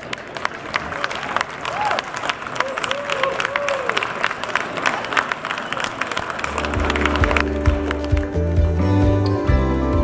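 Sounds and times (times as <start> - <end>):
audience applause: 0.0 - 8.8
music with deep bass line: 6.8 - 10.0.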